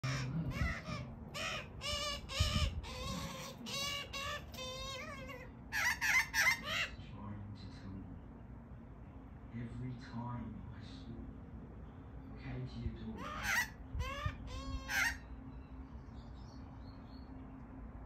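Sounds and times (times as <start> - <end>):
magpies warbling: 0.0 - 7.0, 13.1 - 15.4
harsh bird calls: 0.0 - 7.3, 11.9 - 17.4.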